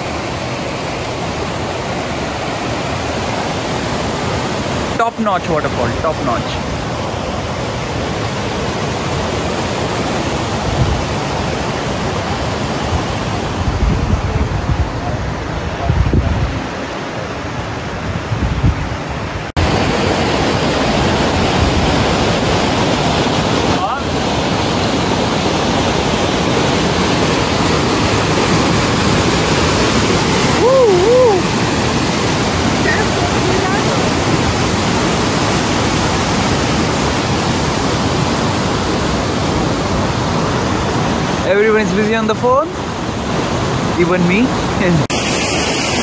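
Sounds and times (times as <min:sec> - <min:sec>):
waterfall cascading over rocks: 0:00.0 - 0:13.6, 0:19.2 - 0:46.0
wind buffeting microphone: 0:07.4 - 0:41.5.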